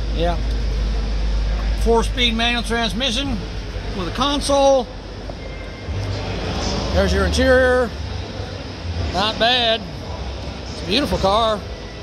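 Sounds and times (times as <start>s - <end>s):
low hum: 0.0s - 12.0s
steady wash of noise: 0.0s - 12.0s.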